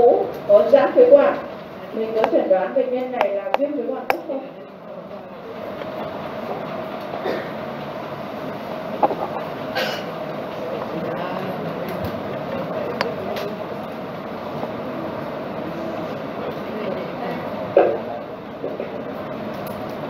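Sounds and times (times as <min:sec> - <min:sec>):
lecture room background noise: 0:00.0 - 0:20.0.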